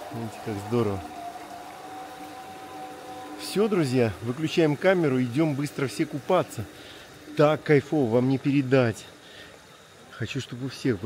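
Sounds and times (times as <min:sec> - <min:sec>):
machine hum: 0:00.0 - 0:09.5
faint wash of water: 0:00.0 - 0:11.0.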